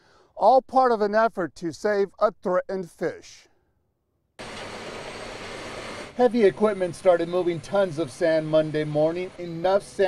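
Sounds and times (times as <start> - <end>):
bulldozer pushing sand: 4.4 - 10.0.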